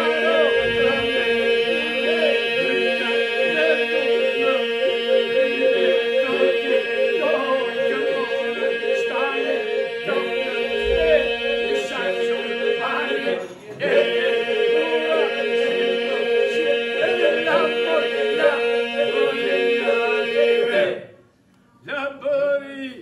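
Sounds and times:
men singing polyphony a cappella: 0.0s - 21.1s.

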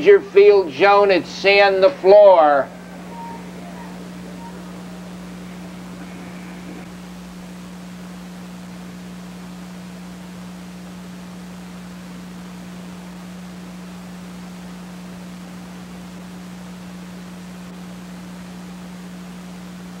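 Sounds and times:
constant low hum: 0.0s - 20.0s
recording hiss: 0.0s - 20.0s.

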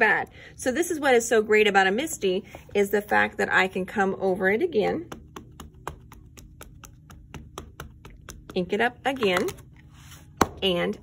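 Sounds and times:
ink pad tapping on stamp: 5.0s - 9.6s.

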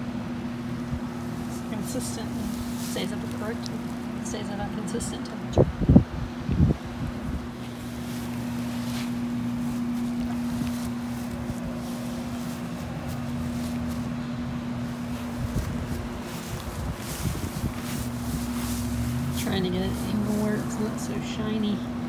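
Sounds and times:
low mechanical hum: 0.0s - 22.0s
wind noise on microphone: 5.4s - 12.4s, 14.8s - 21.0s.

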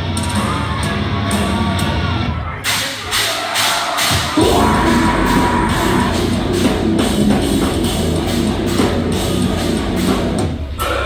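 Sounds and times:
crowd cheering and shouting: 0.1s - 7.7s
metal band playing: 3.1s - 11.0s.

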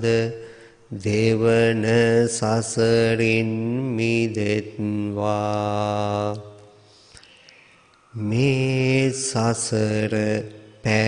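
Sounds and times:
monk chanting: 0.0s - 6.8s, 8.1s - 11.0s.

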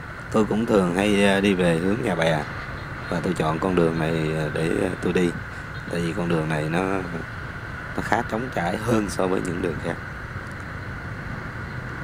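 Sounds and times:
motorbike traffic rumble: 0.0s - 12.0s.

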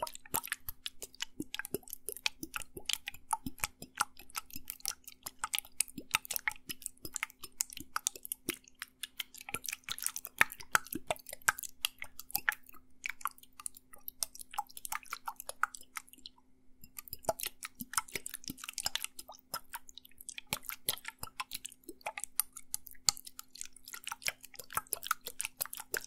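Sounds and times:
liquid sloshing in bottle: 0.0s - 26.0s.

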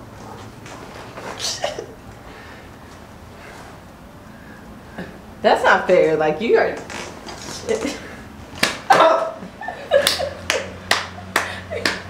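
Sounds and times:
hand clapping: 10.0s - 12.0s.

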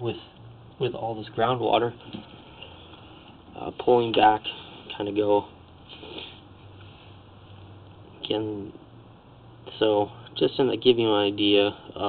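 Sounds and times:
faint low hum and hiss: 0.0s - 12.0s
breath drawn in: 5.9s - 7.2s.

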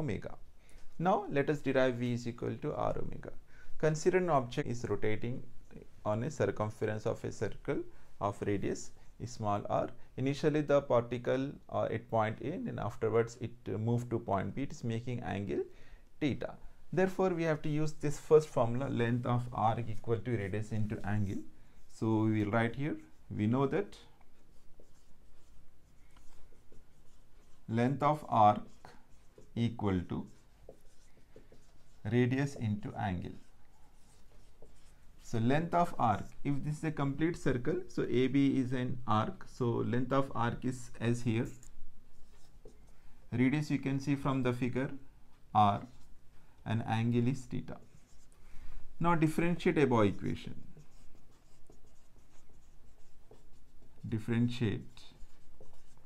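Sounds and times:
marker pen writing on whiteboard: 17.0s - 38.4s, 40.1s - 43.0s, 47.2s - 48.4s, 49.2s - 56.0s.

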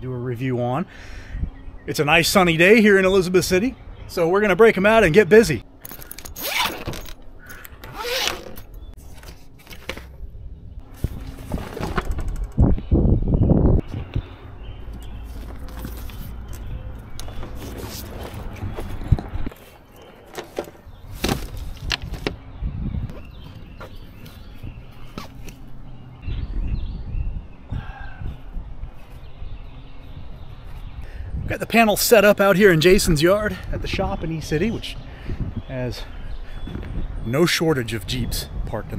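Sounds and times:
zipper on carrying case: 6.0s - 7.2s, 7.8s - 8.7s.

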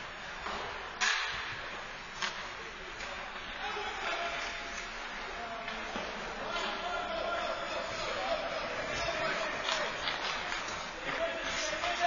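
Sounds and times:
skates scraping on ice: 7.6s - 12.0s.

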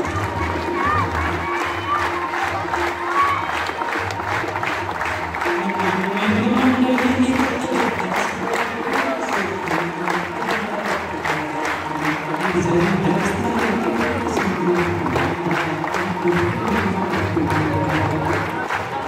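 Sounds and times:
crowd noise: 0.0s - 19.0s.

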